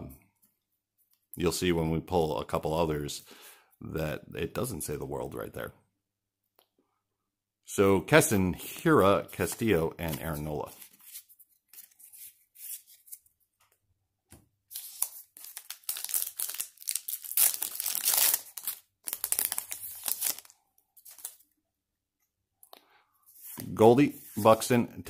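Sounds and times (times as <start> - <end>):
wrapper tearing and crinkling: 14.8 - 21.4.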